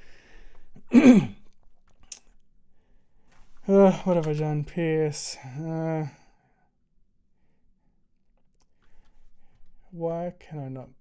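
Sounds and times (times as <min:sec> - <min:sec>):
faint breathing: 0:00.0 - 0:00.8, 0:08.7 - 0:09.9.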